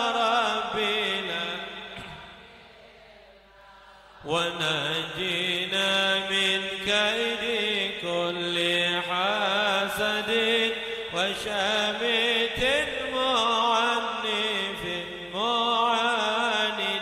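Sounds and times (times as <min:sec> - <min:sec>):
man chanting into a microphone: 0:00.0 - 0:02.5, 0:04.1 - 0:17.0.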